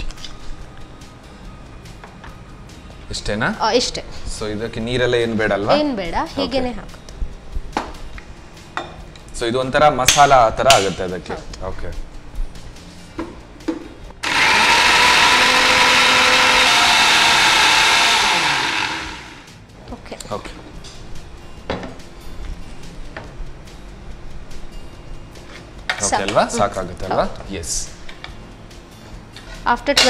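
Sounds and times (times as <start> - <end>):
electric mixer grinder grinding: 14.2 - 19.5.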